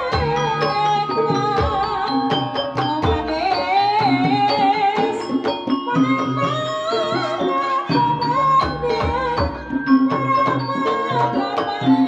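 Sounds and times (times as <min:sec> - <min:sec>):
hand drum strokes: 0:00.0 - 0:12.0
sustained wavering high melody: 0:00.0 - 0:12.0.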